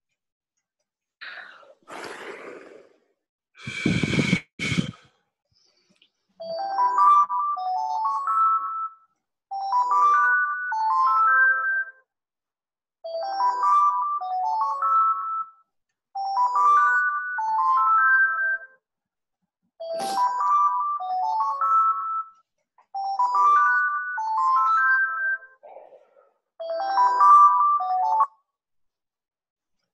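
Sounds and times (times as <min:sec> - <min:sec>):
breath puffs into microphone: 0:03.6 - 0:05.9
phone ringtone: 0:06.4 - 0:12.1, 0:13.1 - 0:18.8, 0:19.8 - 0:22.4, 0:23.0 - 0:25.6, 0:26.6 - 0:28.5.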